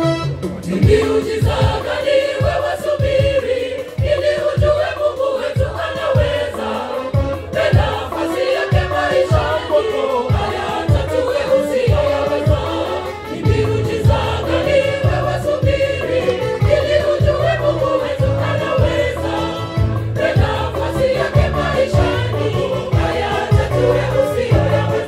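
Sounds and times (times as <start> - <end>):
steady beat: 0.4 - 25.0
gospel choir singing: 0.5 - 25.0
low bass notes: 13.5 - 25.0.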